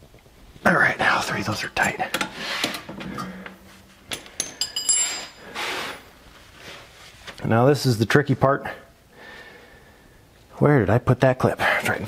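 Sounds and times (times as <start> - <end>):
bright metallic rings: 3.1 - 5.5
steel tools clinking: 3.1 - 5.6.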